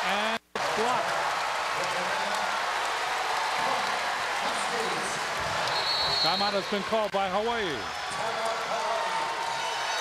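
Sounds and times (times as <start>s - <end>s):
crowd cheering and clapping: 0.0s - 10.0s.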